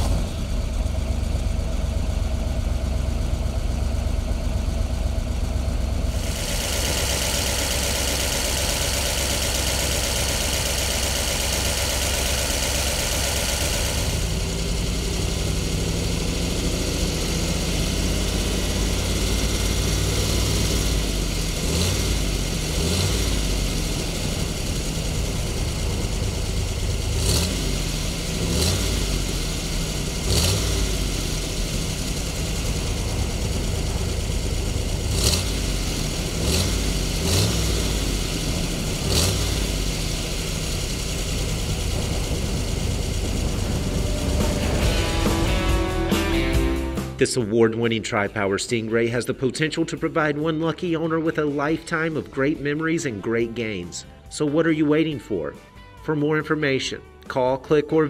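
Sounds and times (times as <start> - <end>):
car engine idling and revving: 0.0 - 47.2, 49.4 - 54.4.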